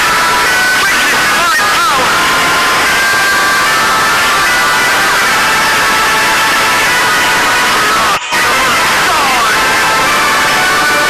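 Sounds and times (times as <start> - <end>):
static-like noise: 0.0 - 11.0.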